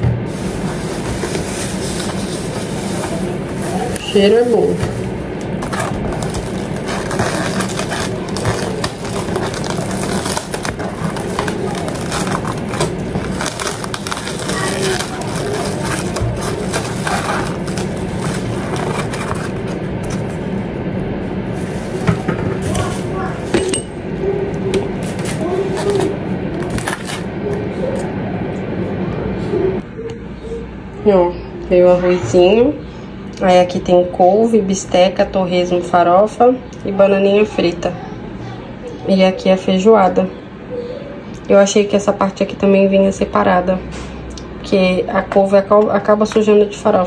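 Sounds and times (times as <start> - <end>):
steady low hum: 0.0 - 47.0
plastic bag rustling: 0.2 - 20.5, 21.5 - 23.6.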